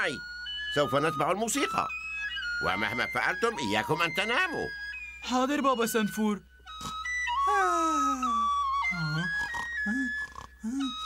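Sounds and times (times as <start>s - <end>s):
high slow melody: 0.0s - 11.0s
sleepy vocal sounds: 6.8s - 11.0s
cartoon character yawning: 7.5s - 8.5s.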